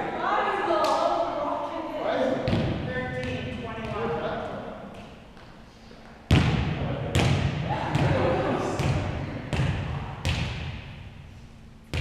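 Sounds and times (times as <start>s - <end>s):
voices echoing in gymnasium: 0.0s - 12.0s
volleyball thud: 2.4s - 4.0s, 6.3s - 11.0s.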